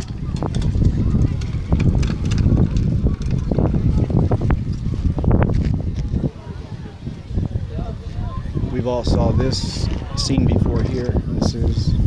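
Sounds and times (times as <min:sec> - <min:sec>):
people talking: 0:00.0 - 0:12.0
steady low rumble: 0:00.0 - 0:12.0.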